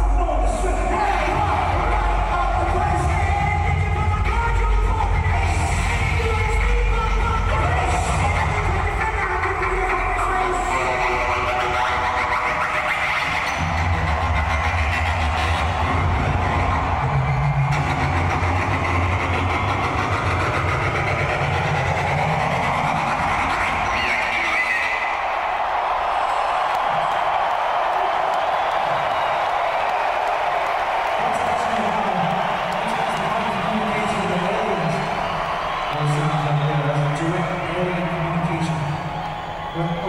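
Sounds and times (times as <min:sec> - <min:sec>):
hip-hop music with heavy bass: 0:00.0 - 0:29.8, 0:31.2 - 0:40.0
arena crowd noise: 0:00.0 - 0:40.0.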